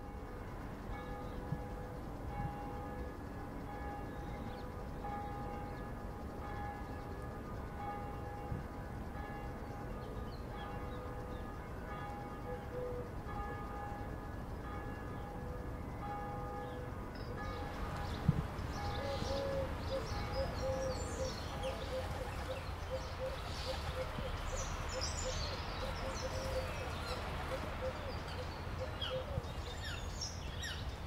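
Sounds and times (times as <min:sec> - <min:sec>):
church bells ringing: 0:00.0 - 0:21.9.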